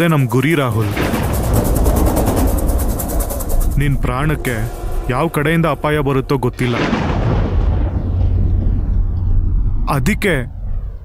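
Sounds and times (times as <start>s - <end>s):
man speaking: 0.0s - 1.1s, 3.8s - 7.0s, 9.9s - 10.5s
low rumble: 0.6s - 11.0s
deep boom hiss: 0.8s - 11.0s.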